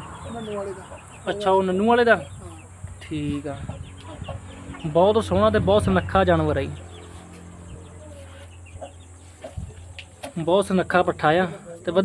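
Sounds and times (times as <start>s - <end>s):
chicken clucking: 0.0s - 6.1s, 6.7s - 10.5s.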